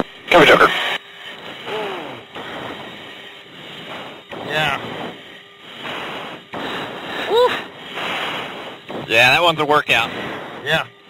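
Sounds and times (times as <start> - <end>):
heavy breaths into a microphone: 0.7 - 11.0
person shouting: 7.3 - 7.6.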